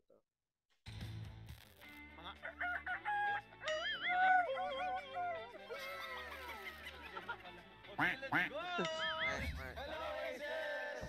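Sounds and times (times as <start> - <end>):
background music: 0.9 - 11.0
rooster crowing: 2.5 - 5.5.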